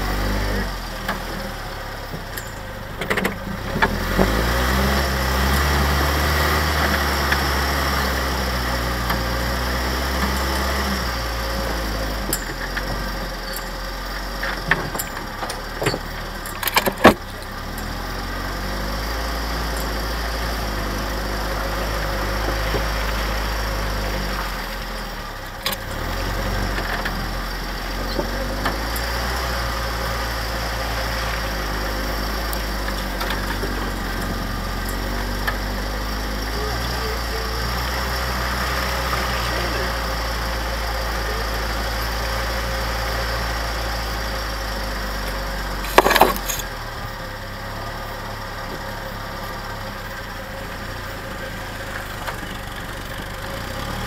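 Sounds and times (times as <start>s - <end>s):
jeep engine running under load: 0.0s - 54.0s.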